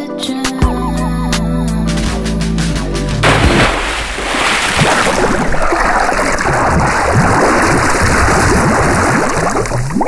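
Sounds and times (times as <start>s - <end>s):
water bubbling and gurgling: 3.5s - 10.0s.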